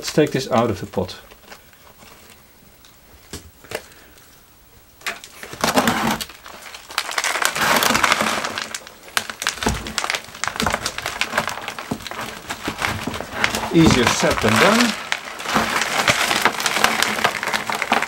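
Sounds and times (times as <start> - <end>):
plastic pot crackling: 0.0 - 4.3, 5.0 - 18.0.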